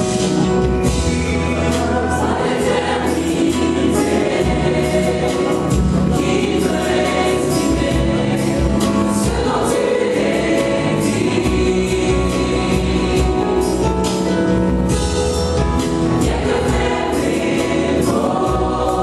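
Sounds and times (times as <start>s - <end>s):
gospel choir singing: 0.0s - 19.0s
instrumental accompaniment: 0.0s - 19.0s
steady percussive beat: 0.0s - 19.0s.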